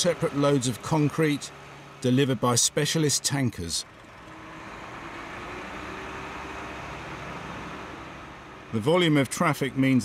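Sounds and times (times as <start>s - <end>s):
diesel truck engine rumbling: 0.0s - 10.0s.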